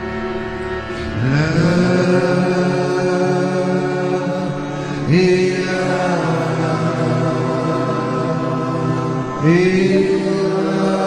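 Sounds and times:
man chanting devotional melody: 0.8s - 11.0s.

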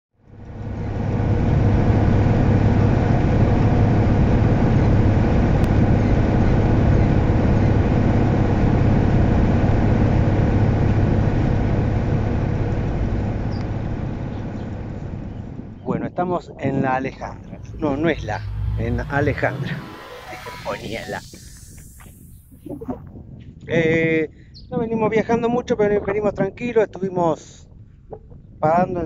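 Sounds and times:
bus engine running: 0.3s - 15.8s, 16.9s - 22.6s
road noise: 0.3s - 23.0s.

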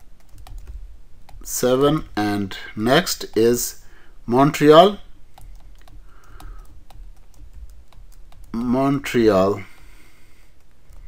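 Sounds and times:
stylus tapping on screen: 0.0s - 1.5s, 5.3s - 9.0s.

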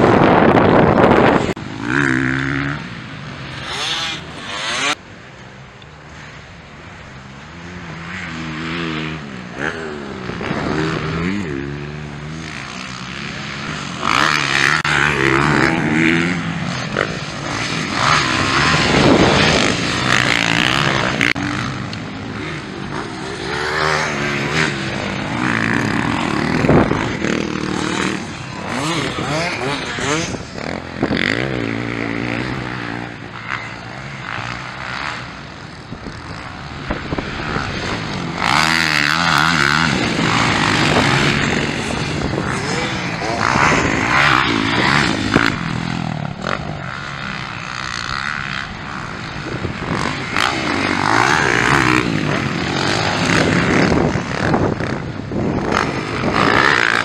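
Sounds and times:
motocross bikes revving: 0.0s - 57.0s.

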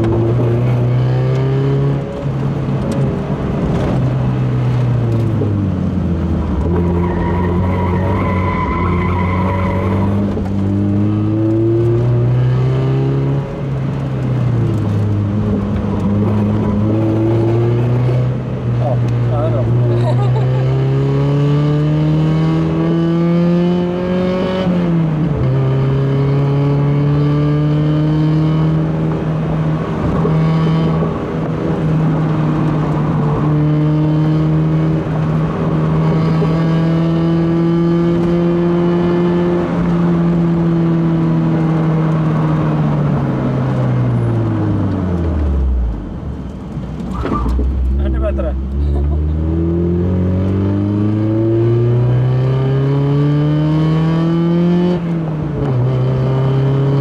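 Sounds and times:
car engine from inside cabin: 9.4s - 57.0s.

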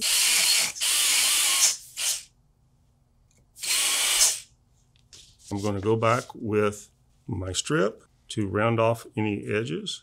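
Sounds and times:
dental handpiece hissing grind: 0.0s - 2.3s, 3.6s - 4.5s.

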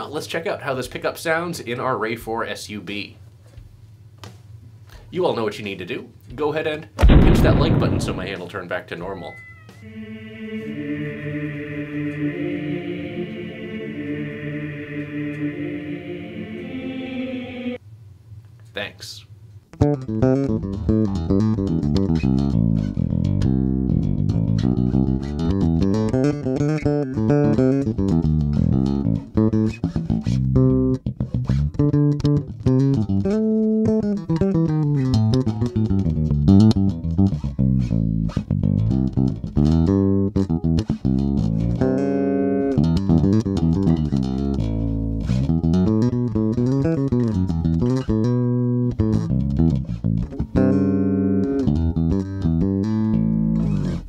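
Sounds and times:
electric bass riff: 19.8s - 54.0s.

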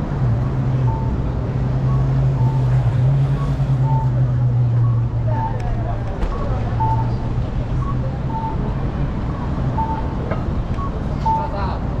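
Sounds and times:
hum of vehicle engines: 0.0s - 12.0s.

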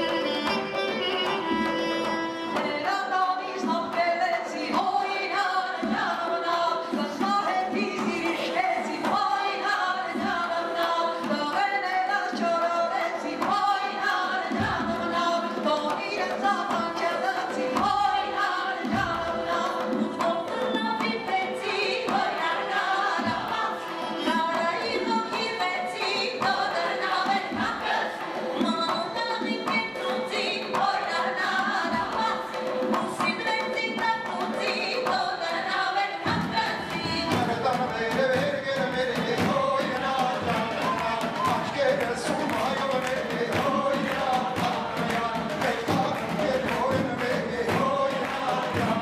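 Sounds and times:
band playing: 0.0s - 2.6s
choir singing folk song: 1.4s - 49.0s
man singing: 37.4s - 49.0s.

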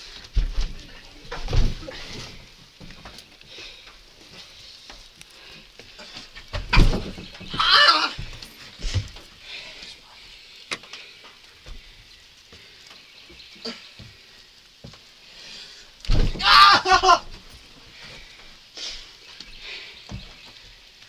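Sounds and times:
light knocks and bumps: 0.0s - 10.0s, 16.0s - 18.5s, 19.3s - 20.8s
heavy body thud: 0.4s - 2.4s, 6.5s - 9.1s, 16.1s - 17.2s
person crying out strained: 7.6s - 8.2s, 16.3s - 17.3s.

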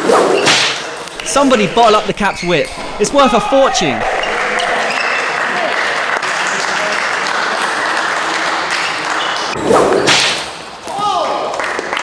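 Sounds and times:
whip crack: 0.0s - 1.0s
rising swoosh: 1.1s - 5.7s.

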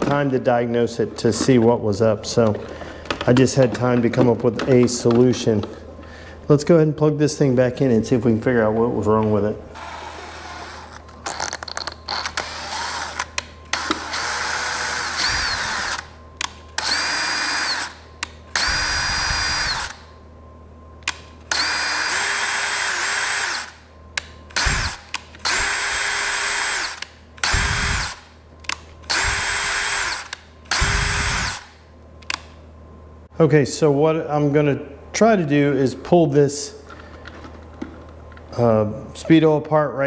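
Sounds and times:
cordless drill whining: 12.1s - 16.1s, 16.8s - 18.0s, 18.6s - 20.0s, 21.5s - 23.8s, 24.6s - 28.2s, 29.1s - 31.7s.

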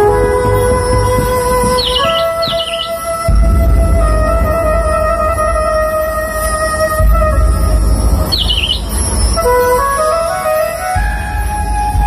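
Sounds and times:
band music bass rumble: 0.0s - 12.0s
warbling bird-like chirp: 1.7s - 3.0s, 8.3s - 8.9s.

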